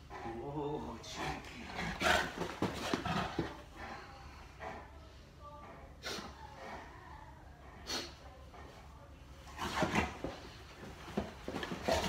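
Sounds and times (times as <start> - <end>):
dog play growl: 0.0 - 4.0, 9.5 - 10.4, 11.2 - 12.0.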